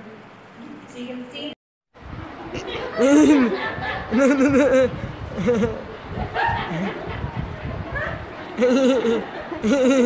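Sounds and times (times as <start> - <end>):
low murmuring voices: 2.0 - 10.0.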